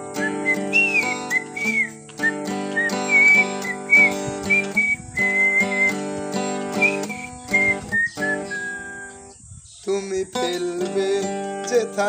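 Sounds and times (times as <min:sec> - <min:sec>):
strummed acoustic guitar: 0:00.0 - 0:09.3, 0:09.9 - 0:12.0
man whistling a melody: 0:00.0 - 0:09.4.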